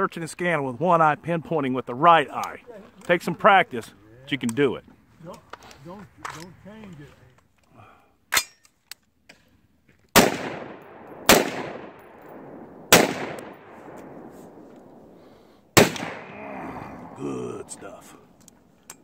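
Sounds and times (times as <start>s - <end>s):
rifle shots echoing: 10.1s - 18.4s.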